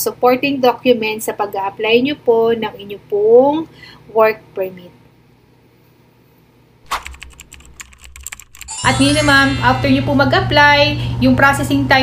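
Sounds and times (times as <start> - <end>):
keys typing clicks: 6.9 - 8.9.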